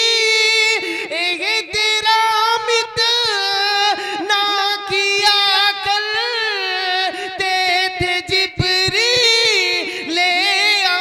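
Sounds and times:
man singing into a microphone: 0.0 - 11.0.

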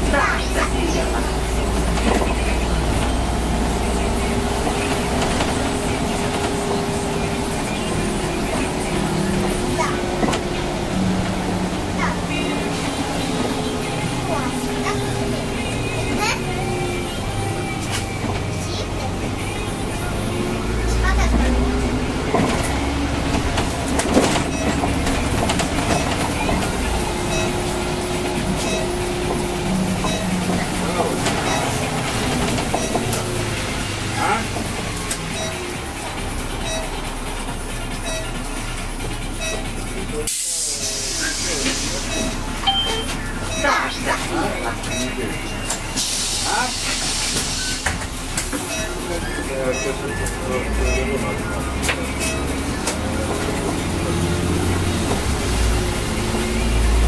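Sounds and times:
bus drivetrain whine: 0.0 - 57.0
bus motor and road rumble: 0.0 - 57.0.

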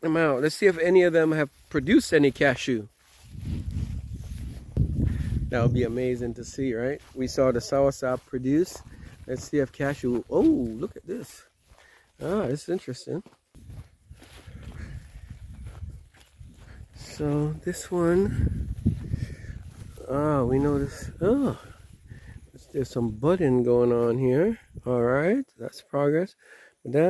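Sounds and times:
footsteps through grass: 0.0 - 25.4.

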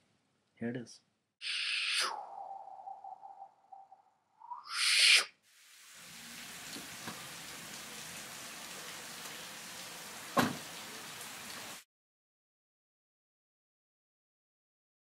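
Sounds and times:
steady rain hiss: 5.5 - 11.8.

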